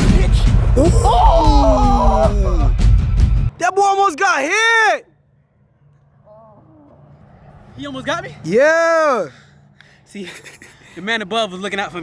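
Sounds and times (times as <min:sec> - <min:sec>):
drawn-out voice rising and falling: 0:06.2 - 0:09.4.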